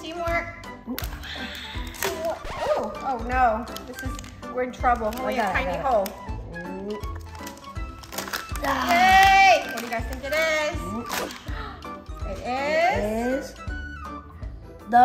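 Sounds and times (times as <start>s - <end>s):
light background music: 0.0s - 15.0s.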